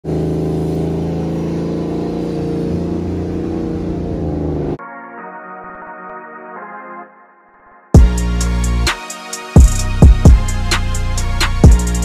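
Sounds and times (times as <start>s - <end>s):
car engine at steady revs: 0.0s - 4.8s.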